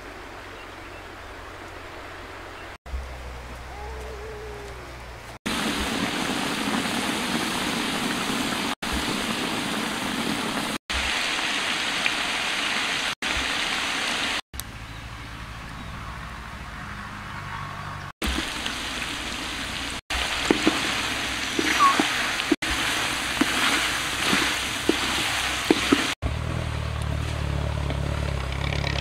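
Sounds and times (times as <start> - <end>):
low hum: 2.9 - 5.4
meat sizzling in a wok: 18.3 - 26.2.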